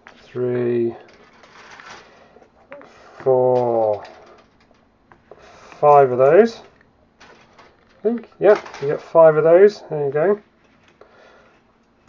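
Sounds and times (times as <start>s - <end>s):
plastic rustling: 1.0s - 4.9s, 6.2s - 9.2s.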